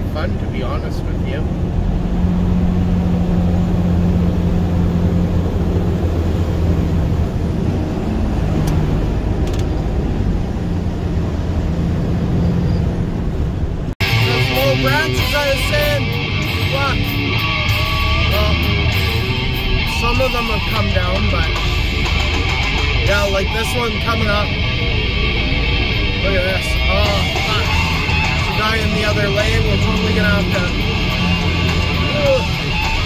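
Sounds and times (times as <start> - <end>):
truck engine drone and road noise: 0.0 - 33.0
guitar music with singing: 14.0 - 33.0.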